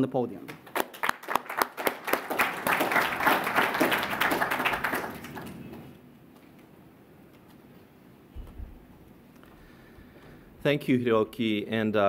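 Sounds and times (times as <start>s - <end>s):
audience applause: 0.6s - 6.0s.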